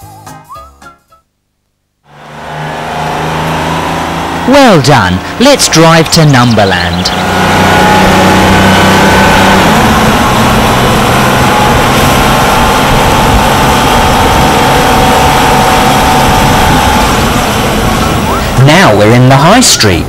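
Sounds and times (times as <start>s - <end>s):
car engine running: 2.0s - 20.0s.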